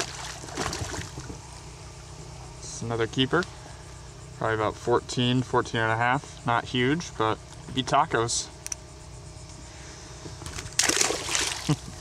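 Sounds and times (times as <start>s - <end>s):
fish splashing in water: 0.0s - 1.3s, 10.5s - 11.8s.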